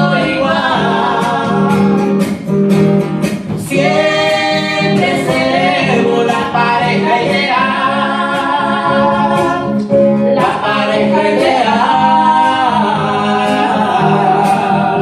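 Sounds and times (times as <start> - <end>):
strummed acoustic guitar: 0.0 - 15.0
woman singing a ballad: 3.6 - 15.0.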